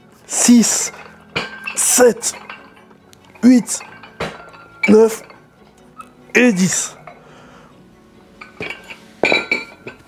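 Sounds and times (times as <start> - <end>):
metal dumbbells clinking: 0.4 - 7.2, 8.4 - 10.0.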